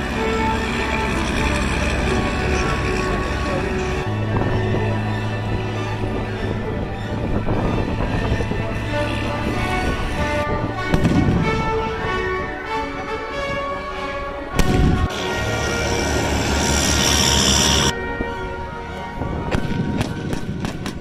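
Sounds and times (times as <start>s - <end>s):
music: 0.0s - 21.0s
pyrotechnic blasts and bangs: 10.8s - 12.0s, 14.6s - 15.2s, 19.4s - 21.0s.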